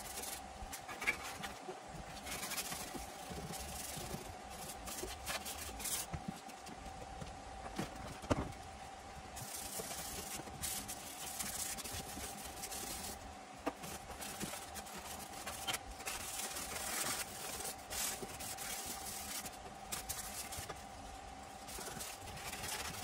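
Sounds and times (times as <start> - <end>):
masking tape pulled and rubbed: 0.0 - 6.7, 9.4 - 21.0, 21.6 - 23.0
steady hum: 0.0 - 23.0.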